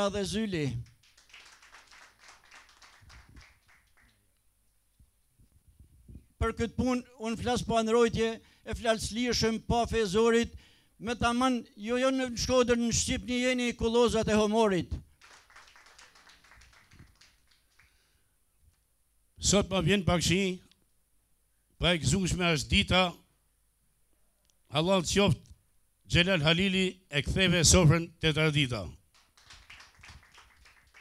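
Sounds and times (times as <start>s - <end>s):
faint quick clapping: 0.8s - 4.2s, 15.2s - 18.0s, 29.1s - 31.0s.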